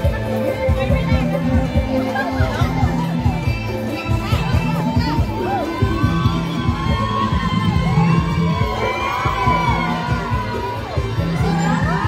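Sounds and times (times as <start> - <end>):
crowd cheering and calling out: 0.0 - 12.0
procession music with drum beat: 0.0 - 12.0.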